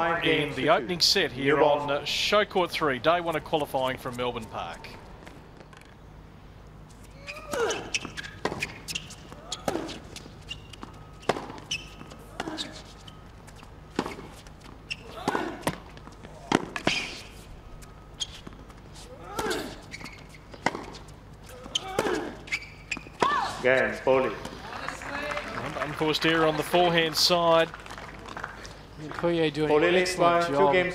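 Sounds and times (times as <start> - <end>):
racket hitting tennis ball: 7.1 - 17.5, 18.3 - 23.6
players grunting: 12.2 - 12.8, 15.0 - 15.7, 19.1 - 19.8, 21.5 - 22.5
ball bounces: 20.5 - 21.0.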